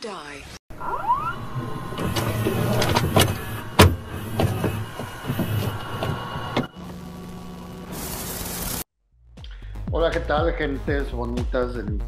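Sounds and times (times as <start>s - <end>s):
electronic rising sweep: 0.7s - 7.9s.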